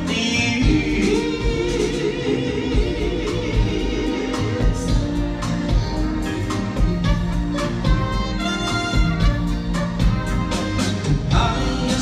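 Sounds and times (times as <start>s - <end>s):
male vocal group singing: 0.0s - 6.6s, 11.2s - 12.0s
backing band playing: 0.0s - 12.0s
steady drum beat: 0.0s - 12.0s.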